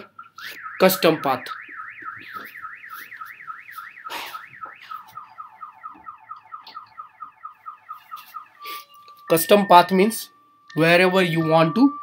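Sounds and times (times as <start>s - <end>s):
car alarm siren: 0.0s - 12.0s.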